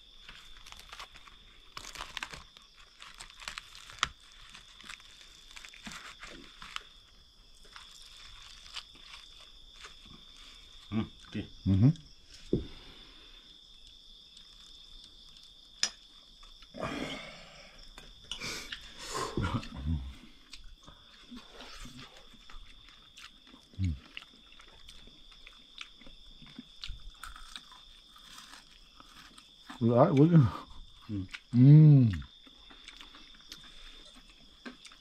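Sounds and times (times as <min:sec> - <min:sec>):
night insects droning: 0:00.0 - 0:35.0
chewing: 0:00.2 - 0:11.4, 0:18.1 - 0:29.8, 0:30.6 - 0:35.0.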